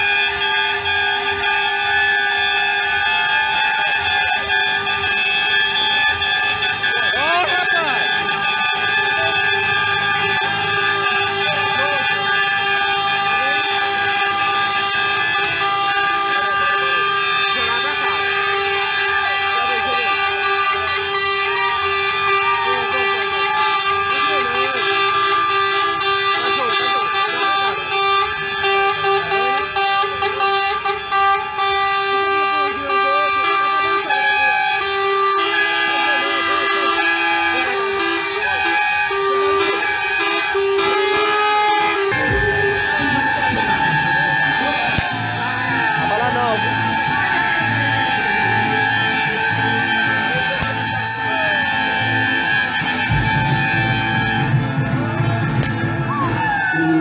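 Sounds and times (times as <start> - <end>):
truck air horns: 0.0 - 57.0
people shouting: 0.3 - 28.2, 37.7 - 57.0.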